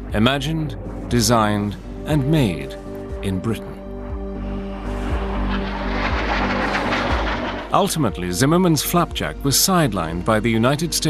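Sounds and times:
jet noise flying over: 0.0s - 8.4s
background music with low notes: 0.0s - 11.0s.

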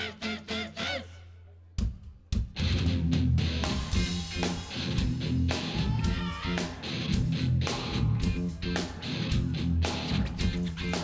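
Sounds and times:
live rock band playing: 2.5s - 11.0s.

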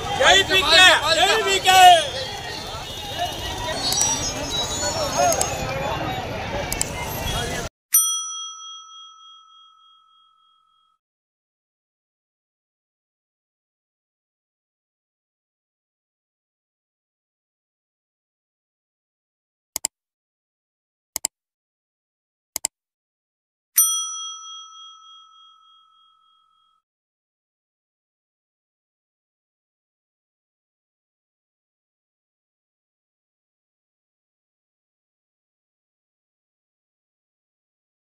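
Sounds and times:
bell-like ding: 7.9s - 11.0s, 23.8s - 26.8s.

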